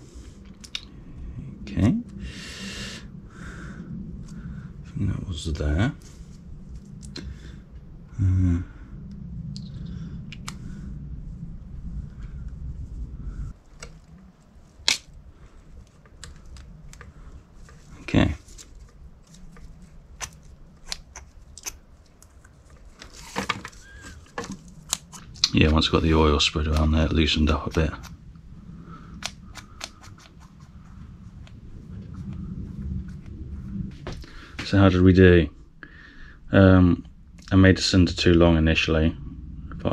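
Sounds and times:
low rumble: 0.0s - 39.9s
low steady hum: 0.0s - 39.9s.

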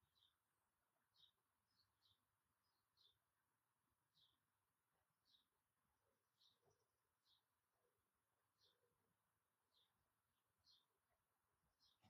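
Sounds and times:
bird chirping: 0.0s - 4.5s, 5.2s - 12.0s.

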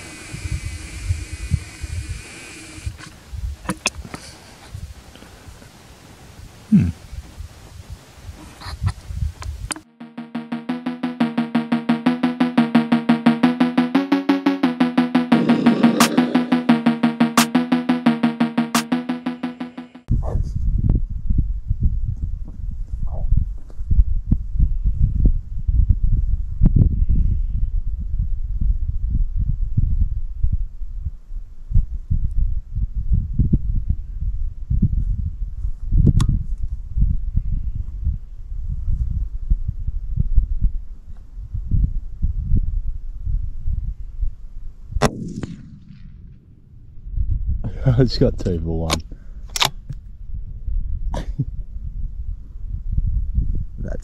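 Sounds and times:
wind rumbling on microphone: 0.0s - 9.7s, 20.1s - 45.0s, 49.8s - 54.0s
background music: 9.7s - 20.1s.

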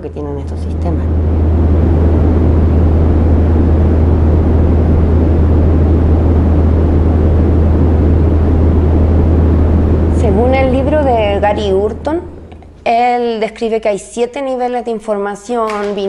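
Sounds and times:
deep rumbling drone: 0.0s - 13.4s.

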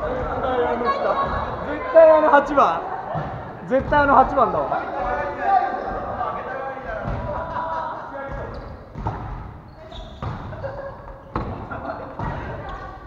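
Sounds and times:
voices in echoing gym: 0.0s - 13.0s
volleyball struck by hands: 8.3s - 9.6s.

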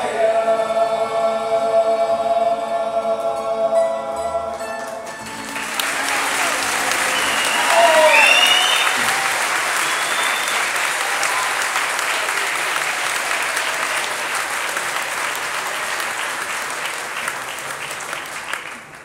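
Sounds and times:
audience applauding: 5.0s - 19.0s.

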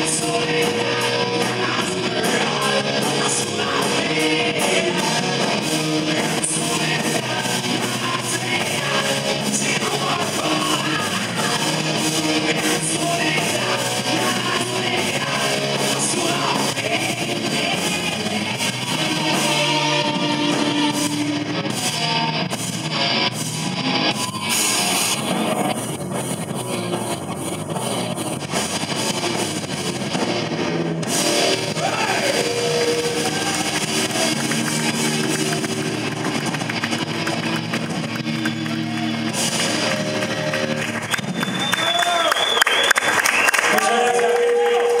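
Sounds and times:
person singing: 0.0s - 22.5s
rock band playing live: 0.0s - 45.0s.

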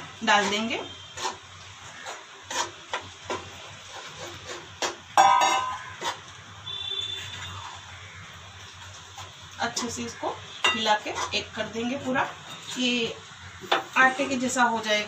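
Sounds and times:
spoon scraping metal pan: 0.0s - 7.9s, 8.8s - 14.5s.

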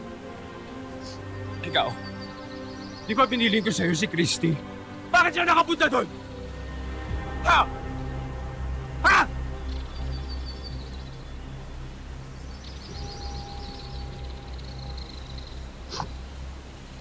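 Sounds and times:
dramatic music with low drone: 0.0s - 17.0s
faint bird twittering: 1.0s - 4.6s, 9.0s - 17.0s
man shouting ha: 7.4s - 7.8s, 9.0s - 9.4s.

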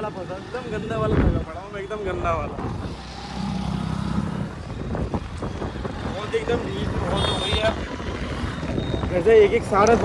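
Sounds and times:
wind buffeting microphone: 1.0s - 10.0s.

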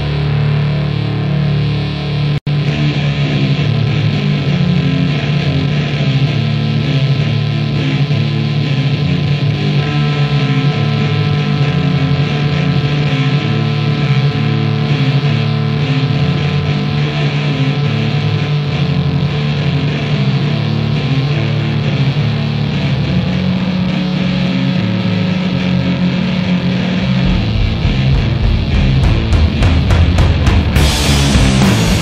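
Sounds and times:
distorted guitar and bass riff: 0.0s - 32.0s.

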